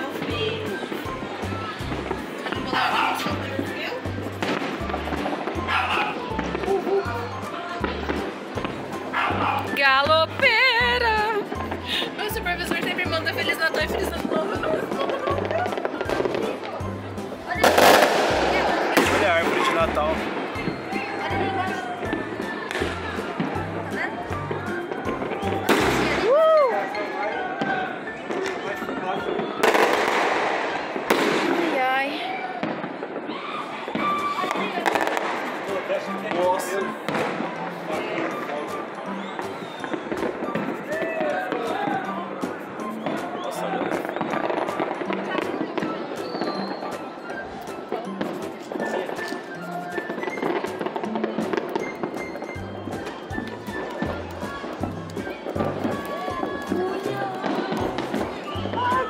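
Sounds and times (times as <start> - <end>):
fireworks bangs and crackles: 0.0 - 59.0
music: 0.0 - 59.0
people's voices: 0.0 - 59.0.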